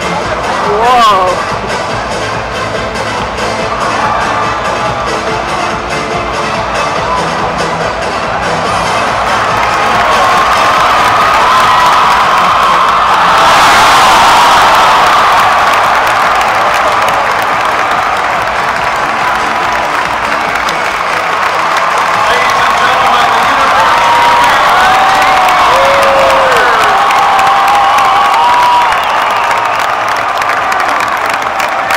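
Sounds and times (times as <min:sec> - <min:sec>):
arena crowd cheering: 0:00.0 - 0:31.9
loud music: 0:00.0 - 0:31.9.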